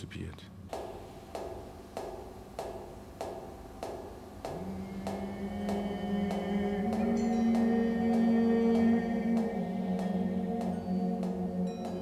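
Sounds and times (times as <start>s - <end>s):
higher tones: 0.7s - 12.0s
water drops ringing: 0.7s - 12.0s
low sustained tone: 0.8s - 12.0s.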